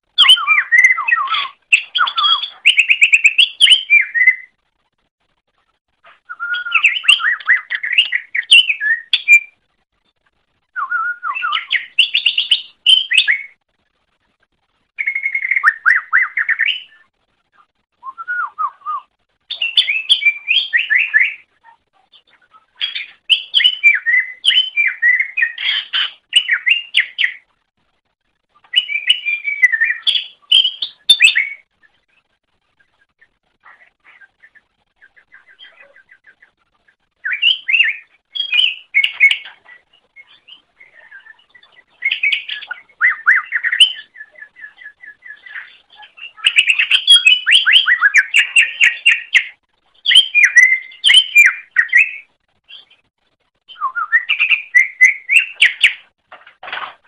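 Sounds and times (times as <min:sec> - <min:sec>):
bird chattering and whistling: 0:00.2 - 0:04.5, 0:06.1 - 0:09.6, 0:10.8 - 0:13.6, 0:15.0 - 0:17.0, 0:18.1 - 0:27.4, 0:28.7 - 0:31.7, 0:37.2 - 0:52.9, 0:53.7 - 0:56.1.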